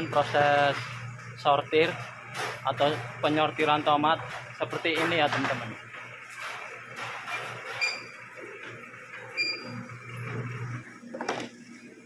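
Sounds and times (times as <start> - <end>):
short high squeaks: 7.3 - 8.3, 9.3 - 9.8.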